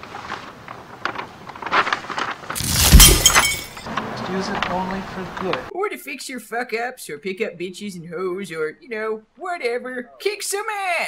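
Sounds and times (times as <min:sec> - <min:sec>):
glass shattering: 0:02.6 - 0:03.9.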